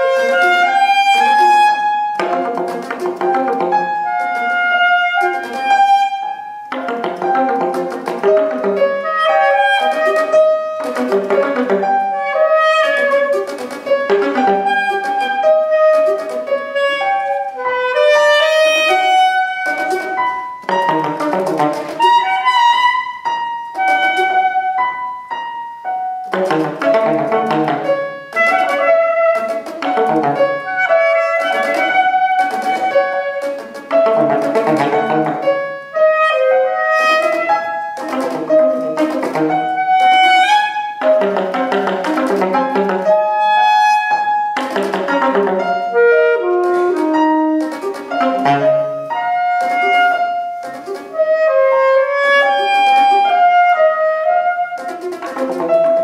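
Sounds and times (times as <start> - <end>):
saxophone: 0.0 - 25.5, 26.3 - 56.0
grand piano: 0.0 - 56.0.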